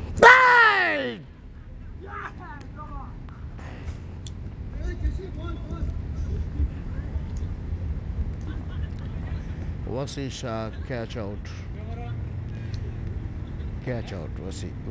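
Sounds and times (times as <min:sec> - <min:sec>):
distant voices calling: 0:00.0 - 0:14.9
low steady rumble: 0:00.0 - 0:14.9.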